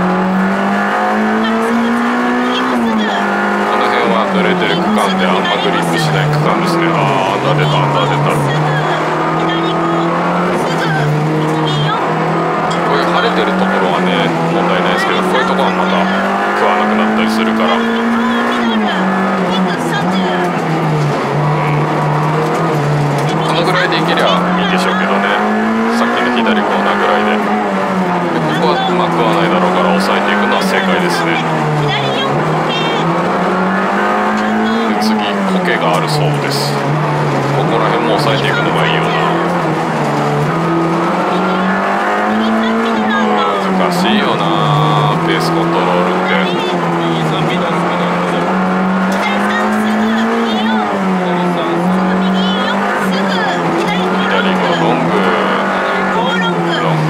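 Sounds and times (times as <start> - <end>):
car engine revving: 0.0 - 57.0.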